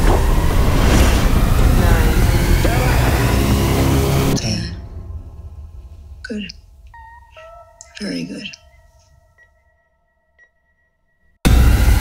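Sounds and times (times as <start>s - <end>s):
harsh trailer noise wash: 0.0s - 6.2s, 11.5s - 12.0s.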